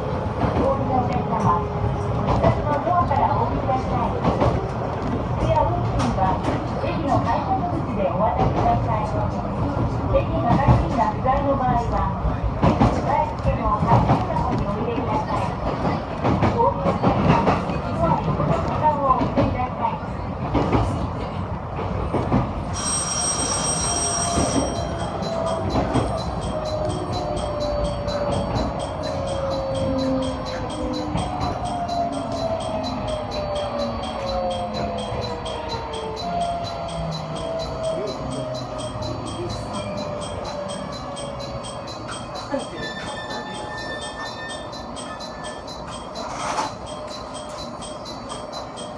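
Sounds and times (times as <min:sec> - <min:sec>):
train wheels rumbling: 0:00.0 - 0:48.9
electric platform bell ringing: 0:22.8 - 0:48.9
track clicks: 0:24.8 - 0:48.9.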